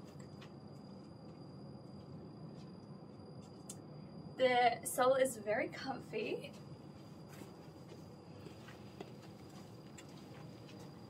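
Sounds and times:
low room hiss: 0.0 - 11.0
footsteps on carpet: 6.5 - 11.0.

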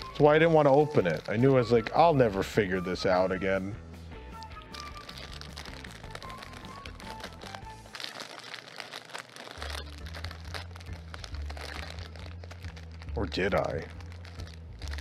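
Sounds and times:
plastic bag crinkling: 0.0 - 2.6, 4.4 - 15.0
background music with bass line: 0.0 - 8.0.

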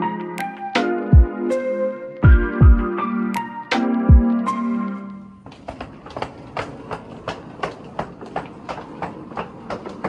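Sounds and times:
suitcase wheels rolling on tiles: 4.9 - 10.0
high heels clicking on tiles: 5.0 - 10.0.

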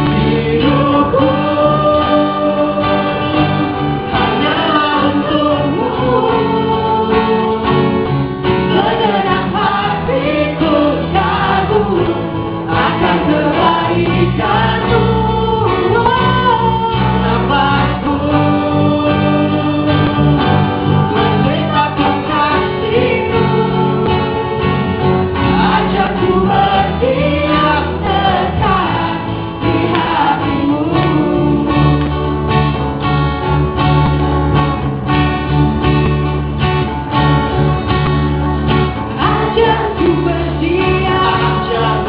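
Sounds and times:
group of voices singing: 0.0 - 32.9, 38.7 - 42.0
strummed guitar: 0.0 - 42.0.

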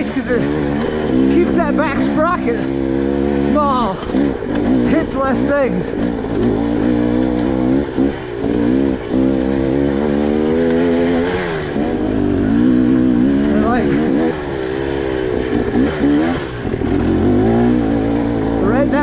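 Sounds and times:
dirt bike engine revving: 0.0 - 19.0.

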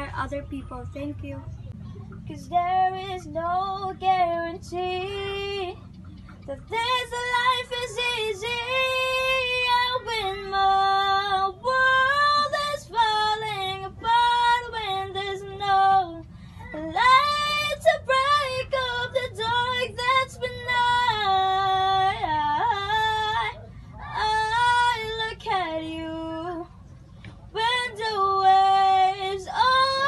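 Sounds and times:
woman singing unaccompanied: 2.2 - 5.8, 6.5 - 26.8, 27.5 - 30.0.

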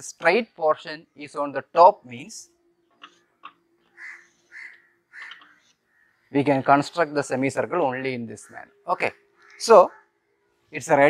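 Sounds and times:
crow cawing: 3.1 - 6.4, 8.3 - 10.6.

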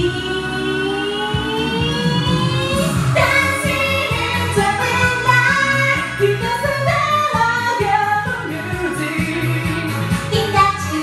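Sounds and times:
karaoke backing track: 0.0 - 11.0
woman singing pop song: 0.0 - 11.0.

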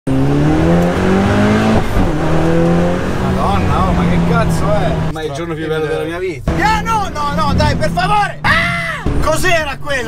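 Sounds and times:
car engine accelerating hard: 0.1 - 5.1.

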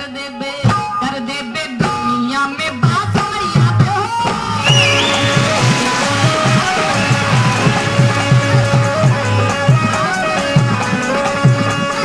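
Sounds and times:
woman singing into a microphone: 0.0 - 4.6
quick steady drum beat: 2.9 - 12.0
held instrumental tones: 4.6 - 9.7.

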